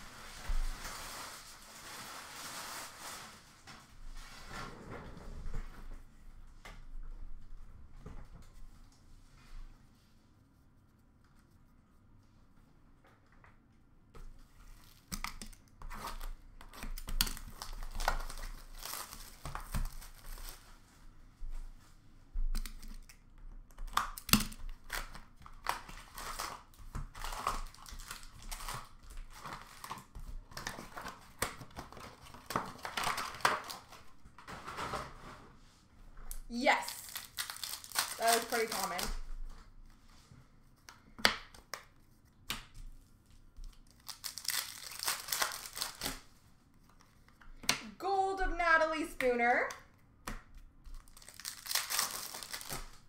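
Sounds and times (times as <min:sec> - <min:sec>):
plastic wrappers tearing and crinkling: 0:00.0 - 0:03.6, 0:14.8 - 0:20.8, 0:22.6 - 0:34.5, 0:36.6 - 0:39.3, 0:43.6 - 0:46.3, 0:51.0 - 0:53.0.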